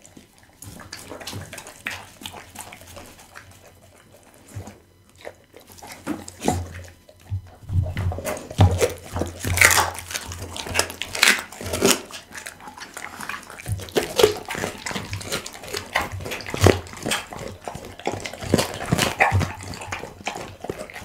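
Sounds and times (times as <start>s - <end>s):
dog crunching bone: 0.0s - 21.0s
wet chewing: 0.0s - 21.0s.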